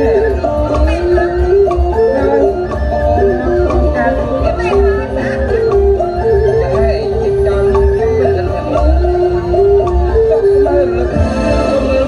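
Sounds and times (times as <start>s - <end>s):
steady drum beat: 0.0s - 12.0s
traditional ensemble: 0.0s - 12.0s.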